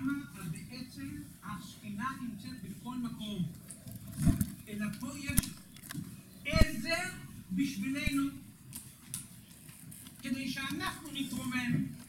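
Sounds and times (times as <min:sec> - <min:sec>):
man talking: 0:04.7 - 0:05.6, 0:06.5 - 0:08.5, 0:10.3 - 0:12.0.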